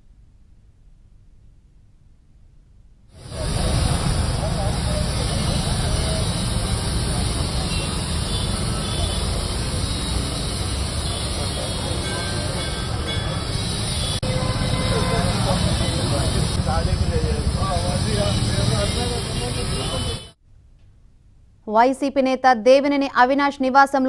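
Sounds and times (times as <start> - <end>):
faint voices talking: 3.2 - 20.4
heavy low rumble: 15.4 - 19.4.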